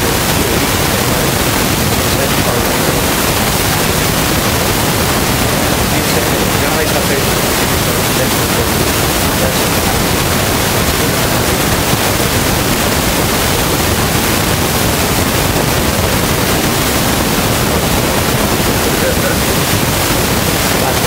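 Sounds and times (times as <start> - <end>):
loud static hiss: 0.0 - 21.0.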